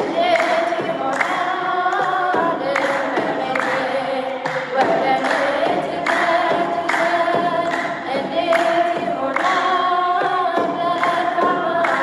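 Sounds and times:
woman singing a hymn: 0.0 - 12.0.

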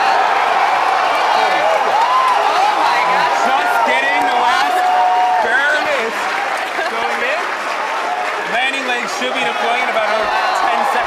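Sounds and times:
crowd clapping: 0.0 - 11.0.

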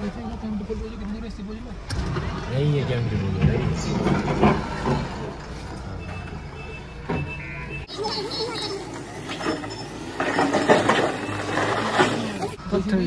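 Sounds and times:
street noise: 0.0 - 13.0
people's voices: 7.5 - 13.0.

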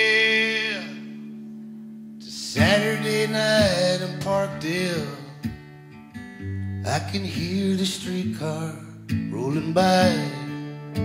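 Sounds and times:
person singing: 0.0 - 1.4, 2.2 - 5.4, 6.9 - 10.8
acoustic guitar strums: 0.0 - 11.0.

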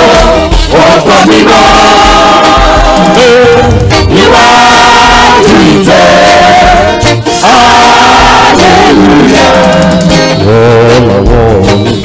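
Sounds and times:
low bass beat: 0.0 - 12.0
men singing gospel: 0.0 - 12.0.

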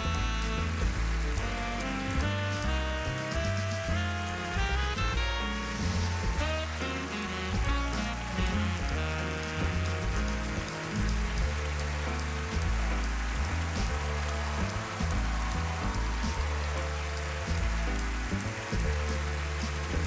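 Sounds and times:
audience applause: 0.0 - 20.0
jazz music with deep bass: 0.0 - 20.0.

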